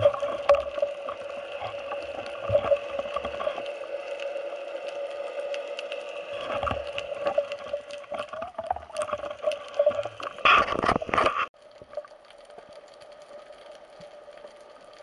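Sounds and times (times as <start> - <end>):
water sloshing underwater: 0.0 - 15.0.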